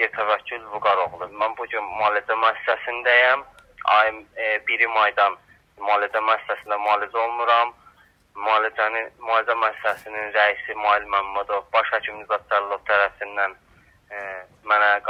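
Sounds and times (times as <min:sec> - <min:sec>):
man talking over phone: 0:00.0 - 0:15.0.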